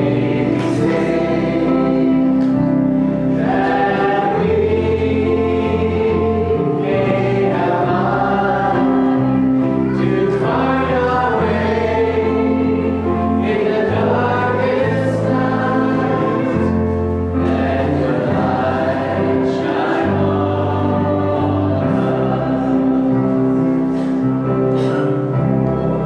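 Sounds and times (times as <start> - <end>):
congregation singing a hymn: 0.0 - 26.0
keyboard accompaniment: 0.0 - 26.0.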